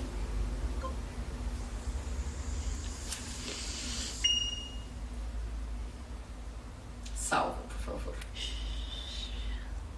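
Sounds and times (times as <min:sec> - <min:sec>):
low steady hum: 0:00.0 - 0:09.9.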